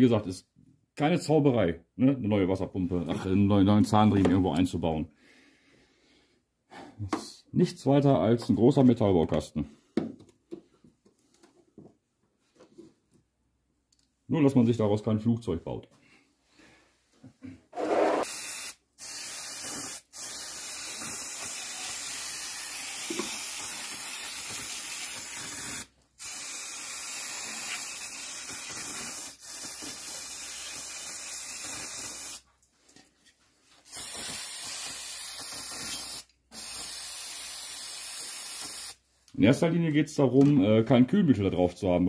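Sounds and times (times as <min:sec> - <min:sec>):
aerosol spray can hissing: 0:17.9 - 0:32.4, 0:33.8 - 0:39.0.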